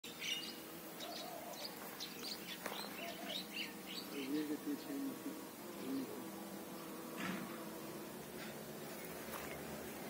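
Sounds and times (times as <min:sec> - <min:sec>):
small birds chirping: 0:00.1 - 0:10.0.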